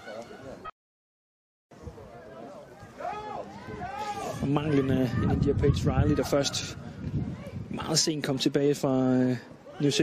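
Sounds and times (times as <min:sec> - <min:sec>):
faint outdoor ambience: 0:01.7 - 0:10.0
players shouting calls: 0:02.6 - 0:06.8.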